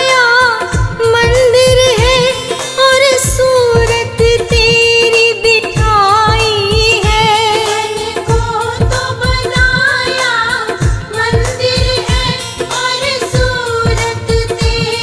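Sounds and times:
person singing devotional song: 0.0 - 15.0
steady drum beat: 0.0 - 15.0.

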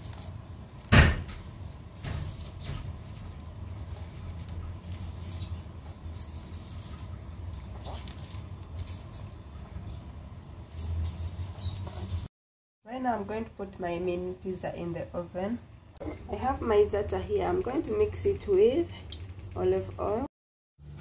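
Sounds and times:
plastic bag rustling: 0.0 - 9.6, 10.6 - 12.3.

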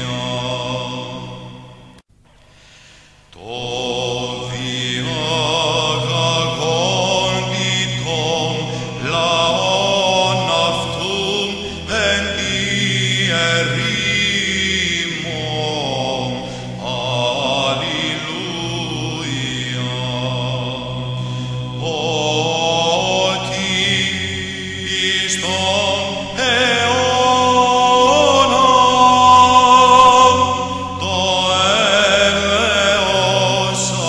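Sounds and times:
held vocal drone: 0.0 - 2.0, 2.6 - 34.0
person chanting ornamented melody: 0.0 - 2.0, 3.3 - 34.0.

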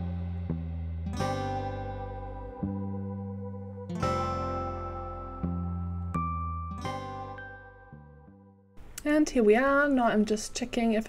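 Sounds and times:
acoustic guitar chords: 0.0 - 8.4.

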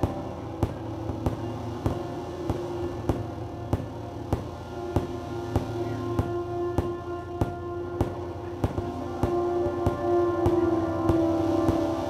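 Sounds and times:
drone music on keyboard and guitar: 0.0 - 12.0.

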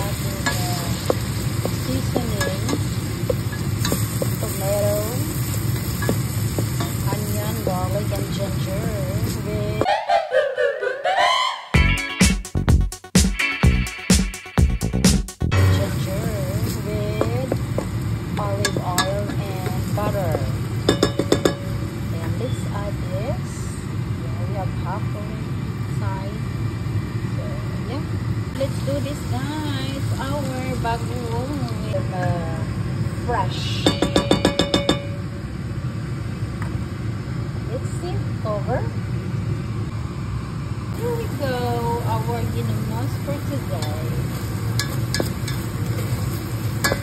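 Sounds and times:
vegetables sizzling in a pan: 0.0 - 9.8, 15.5 - 39.3, 40.9 - 47.0.

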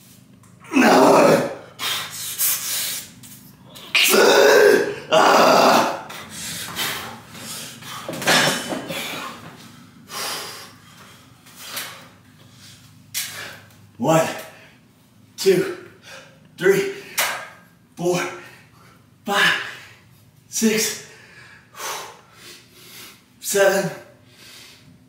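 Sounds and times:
man grunting: 0.6 - 1.7, 3.8 - 6.2
man breathing hard: 6.1 - 13.7, 21.0 - 23.3, 24.2 - 25.0.

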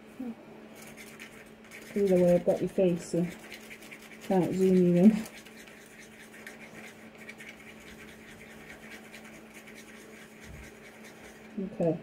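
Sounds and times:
low steady hum: 0.0 - 12.0
stick scraping inside plastic cup: 0.8 - 11.6.

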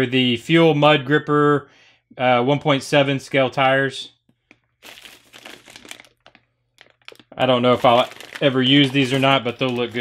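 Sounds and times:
plastic packaging crinkling: 4.5 - 10.0.

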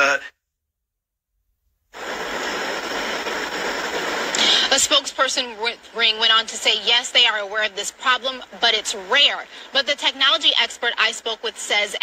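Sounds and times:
outdoor microphone hiss: 0.0 - 0.4, 1.6 - 12.0.

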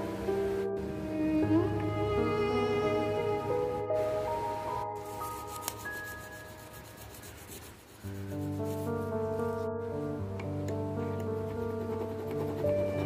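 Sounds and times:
violin music: 0.0 - 13.0.

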